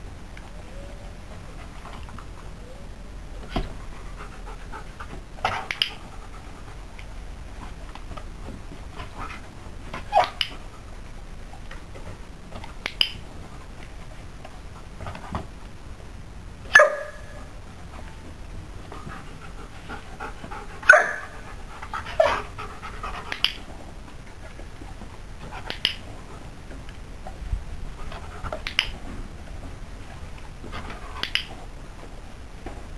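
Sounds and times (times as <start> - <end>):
dog panting: 3.8 - 6.9, 18.8 - 23.6.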